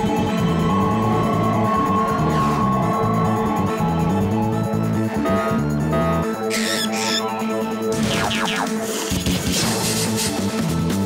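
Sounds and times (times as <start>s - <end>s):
cartoon background music: 0.2s - 11.0s
high wavering cartoon cries: 6.5s - 7.4s.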